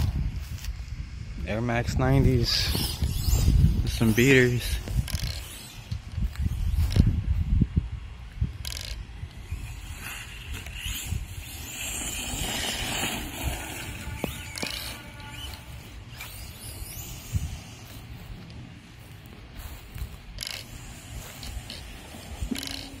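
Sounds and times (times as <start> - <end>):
toy truck motor whirring: 2.4 - 23.0.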